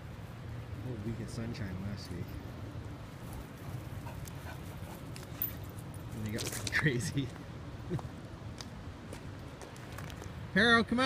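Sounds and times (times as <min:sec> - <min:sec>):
dogs sniffing and breathing: 0:02.2 - 0:06.2.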